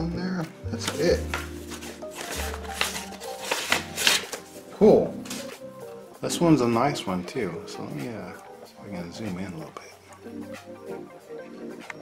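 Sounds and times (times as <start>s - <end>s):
soft background music: 0.0s - 12.0s
paper packaging rustling: 0.8s - 5.6s.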